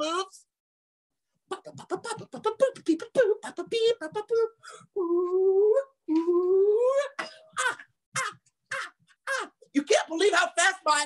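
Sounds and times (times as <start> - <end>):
man vocalizing: 1.5 - 10.1.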